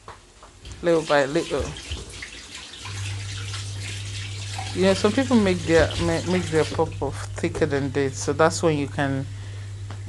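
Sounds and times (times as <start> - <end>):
low steady hum: 0.0 - 10.0
dough sizzling in hot oil: 0.8 - 7.2.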